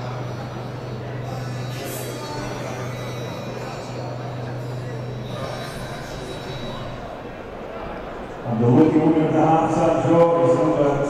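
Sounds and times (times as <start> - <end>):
indistinct voices: 0.0 - 11.0
steady low hum: 0.0 - 11.0.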